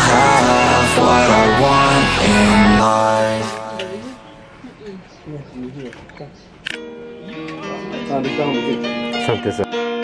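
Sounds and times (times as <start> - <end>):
sharp click: 5.9 - 6.8
music with guitar: 6.7 - 10.0.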